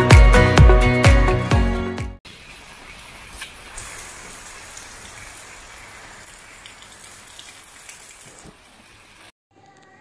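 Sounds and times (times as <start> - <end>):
rain falling steadily: 2.3 - 9.3.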